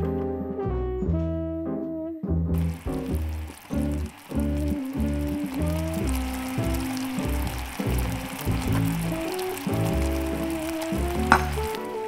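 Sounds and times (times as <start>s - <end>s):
background music: 0.0s - 12.0s
syrup bubbling in a saucepan: 2.6s - 12.0s.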